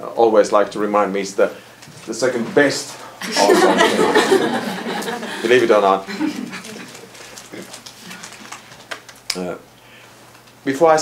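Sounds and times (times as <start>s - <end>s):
people laughing: 3.2s - 7.7s.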